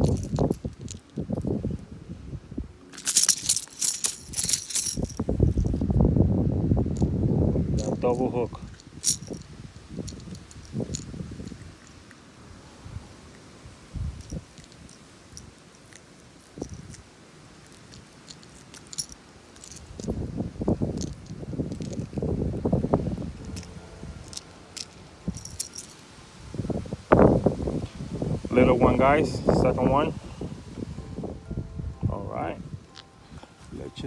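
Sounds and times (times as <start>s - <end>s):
rubbing and rustling from handling: 2.8s - 5.9s, 7.8s - 12.2s, 14.1s - 26.0s
metallic clicks of fishing lure hooks: 8.8s - 12.2s, 20.9s - 22.2s, 23.5s - 26.0s.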